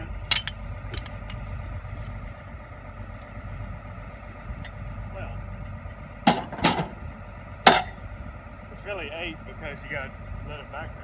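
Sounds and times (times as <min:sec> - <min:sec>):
steady low rumble: 0:00.0 - 0:11.0
metal jack clanking: 0:00.2 - 0:01.4.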